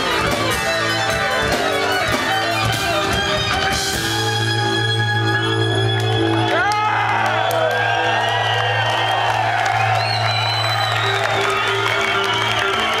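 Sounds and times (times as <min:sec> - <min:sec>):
live rock band playing: 0:00.0 - 0:06.8
audience whooping and cheering: 0:05.3 - 0:13.0.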